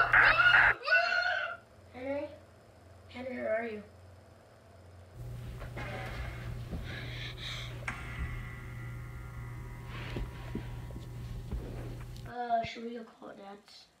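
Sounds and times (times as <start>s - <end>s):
steady low hum: 1.6s - 12.4s.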